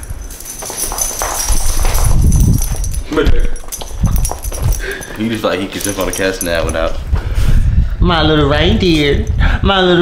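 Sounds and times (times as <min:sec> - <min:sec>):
low rumbling handling noise: 0:00.0 - 0:07.4.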